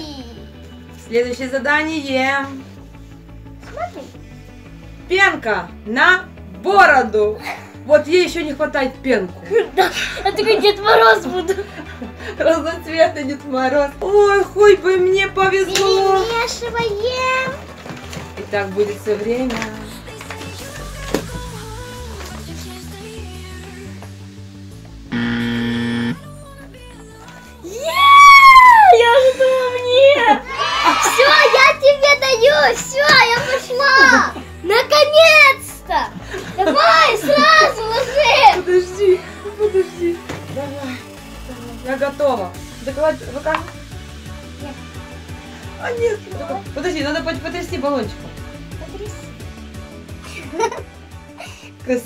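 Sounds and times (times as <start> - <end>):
quiet background music: 0.0 - 52.0
buzzer tone: 25.1 - 26.2.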